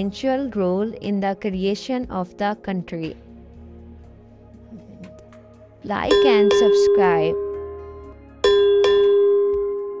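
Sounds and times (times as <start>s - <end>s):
bell-like notification chime: 6.1s - 10.0s.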